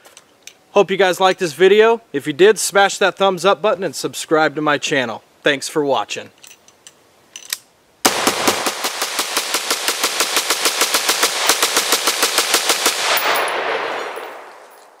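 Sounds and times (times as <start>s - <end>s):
rifle firing rapid shots: 8.0s - 14.5s
gunshot echo: 8.1s - 15.0s.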